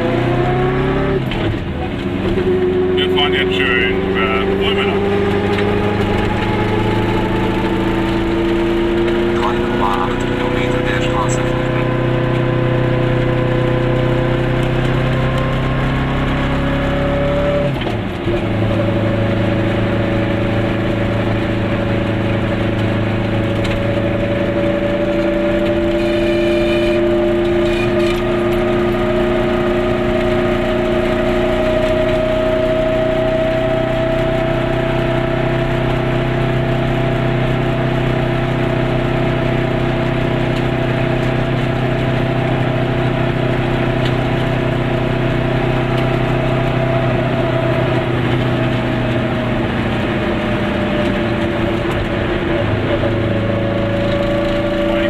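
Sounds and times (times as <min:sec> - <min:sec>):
two-stroke car engine: 0:00.0 - 0:55.0.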